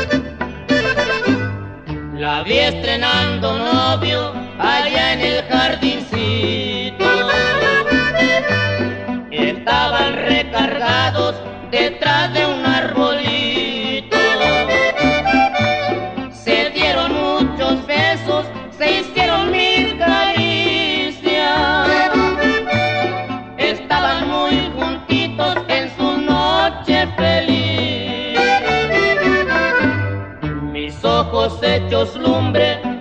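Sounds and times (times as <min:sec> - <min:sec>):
accordion melody: 0:00.0 - 0:33.0
bouncing bass line: 0:00.0 - 0:33.0
strummed guitar: 0:00.0 - 0:33.0.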